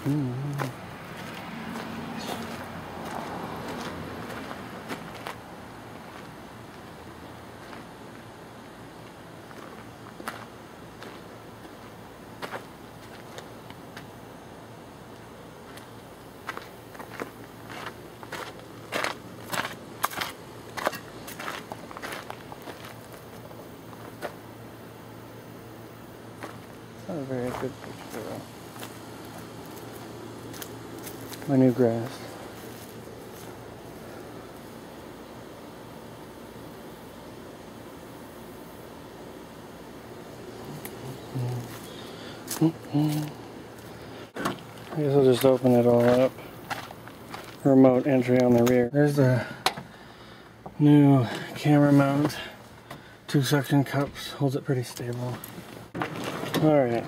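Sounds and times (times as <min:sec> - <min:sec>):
footsteps crunching on gravel: 0:00.0 - 0:07.0, 0:07.6 - 0:08.3, 0:09.0 - 0:14.1, 0:15.6 - 0:24.4, 0:26.3 - 0:34.8, 0:40.7 - 0:48.9, 0:51.2 - 0:53.1, 0:53.9 - 0:57.0.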